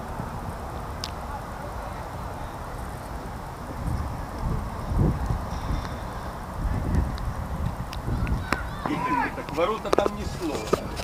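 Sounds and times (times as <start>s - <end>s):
wind buffeting microphone: 0.0s - 11.0s
loud shouted calls: 8.0s - 9.9s.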